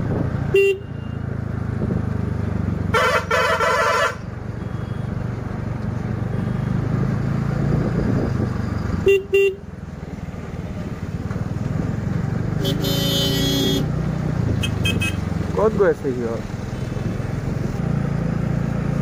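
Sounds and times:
horn beeps: 0:03.0 - 0:05.1, 0:12.6 - 0:13.9, 0:14.6 - 0:15.2.

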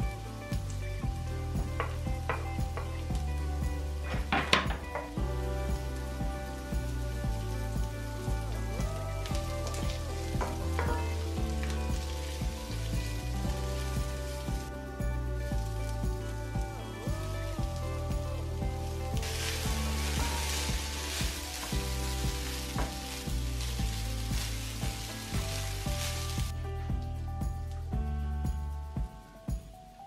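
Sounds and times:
onions sizzling in hot oil: 0:00.0 - 0:26.5
background music: 0:00.0 - 0:30.0.

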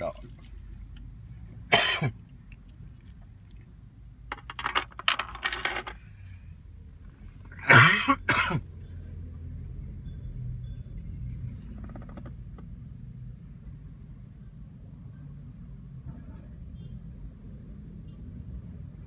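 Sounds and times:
car keys clicking and jangling: 0:00.0 - 0:01.1, 0:02.5 - 0:03.6, 0:04.4 - 0:06.0
low steady hum: 0:00.0 - 0:01.1.

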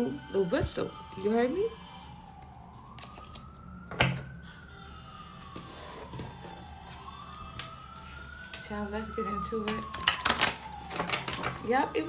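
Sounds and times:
siren wailing: 0:00.0 - 0:12.0.

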